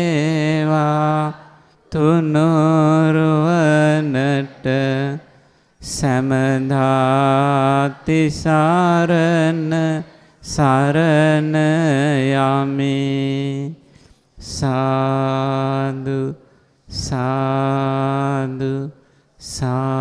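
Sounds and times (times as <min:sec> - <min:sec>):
monk chanting solo: 0:00.0 - 0:13.8, 0:14.4 - 0:20.0.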